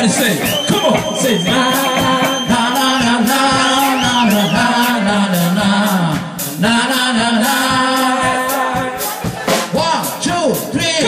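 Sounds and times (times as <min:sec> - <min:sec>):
electric guitars: 0:00.0 - 0:06.6
drum kit beat: 0:00.0 - 0:11.0
live rock band playing: 0:00.0 - 0:11.0
person singing long notes: 0:01.3 - 0:06.0.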